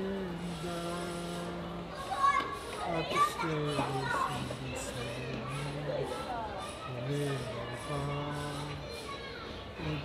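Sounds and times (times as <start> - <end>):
man singing unaccompanied: 0.0 - 2.1, 2.9 - 6.3, 6.9 - 8.8, 9.8 - 10.0
children's voices: 0.0 - 10.0.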